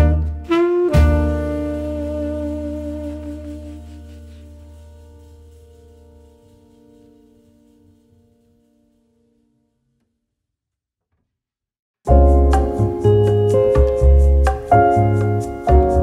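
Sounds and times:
jazz chord ringing out: 0.0 - 5.2, 12.1 - 16.0.

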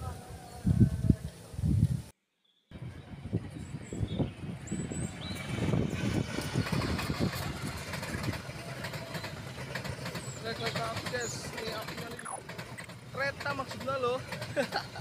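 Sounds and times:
train rumbling past: 2.7 - 15.0
wheels clattering on rails: 3.6 - 15.0.

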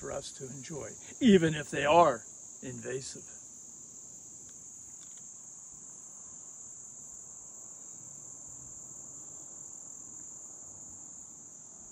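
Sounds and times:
insects chorus: 0.0 - 11.9.

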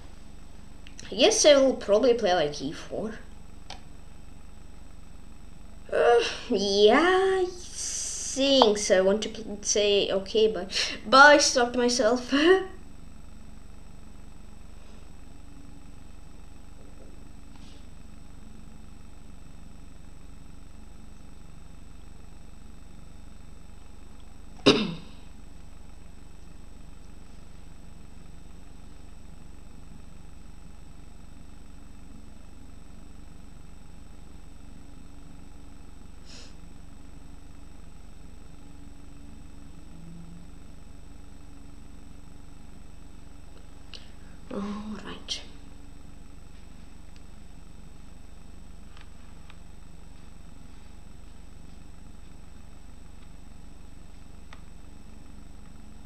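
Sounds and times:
room hum and hiss: 0.0 - 56.0
loud cough: 24.6 - 25.2.

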